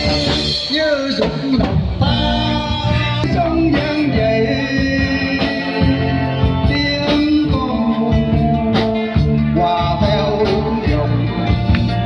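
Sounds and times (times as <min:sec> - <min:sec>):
drums: 0:00.0 - 0:12.0
electric bass: 0:00.0 - 0:12.0
man singing into microphone: 0:00.0 - 0:12.0.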